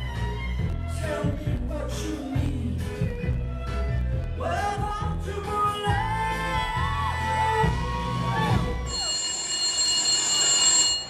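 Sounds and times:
recorded music: 0:00.0 - 0:08.9
telephone ringing: 0:08.8 - 0:11.0.

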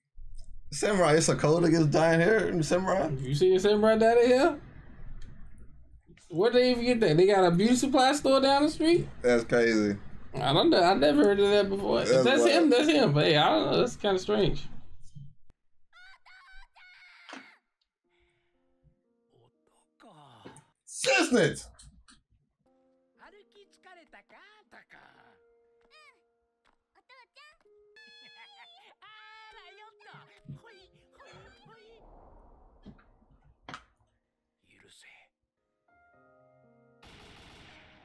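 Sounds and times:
character speaking: 0:11.9 - 0:12.8
girl crying out: 0:16.0 - 0:17.6.

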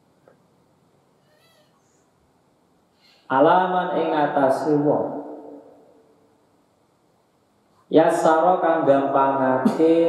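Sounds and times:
man reciting through microphone: 0:03.3 - 0:05.5, 0:07.9 - 0:10.0
voice echo: 0:03.3 - 0:06.2, 0:07.9 - 0:10.0.

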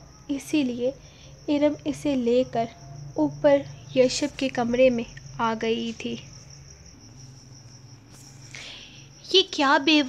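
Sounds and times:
person speaking: 0:03.9 - 0:06.3.

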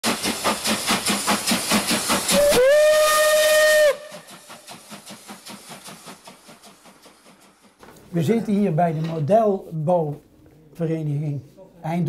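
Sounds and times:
steam locomotive chuffing: 0:00.0 - 0:09.2
steam whistle blast: 0:02.3 - 0:04.3.

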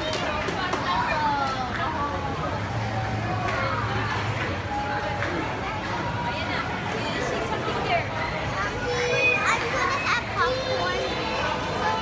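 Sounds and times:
young children calling out: 0:08.8 - 0:12.0.

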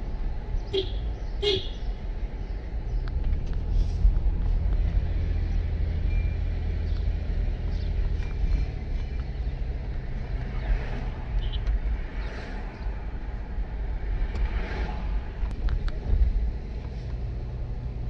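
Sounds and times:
engine and tyre rumble: 0:00.0 - 0:18.0.

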